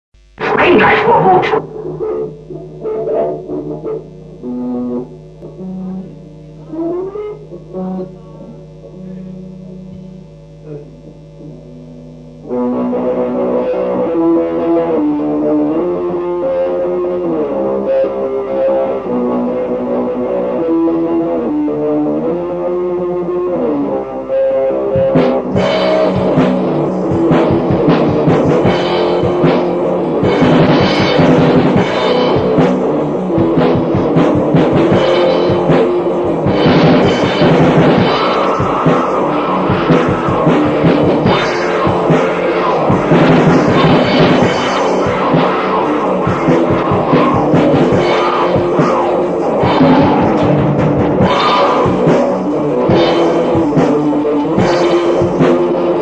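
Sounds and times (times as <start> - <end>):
distorted guitar riff: 0.1 - 56.0
drums and crashing cymbals: 25.0 - 56.0.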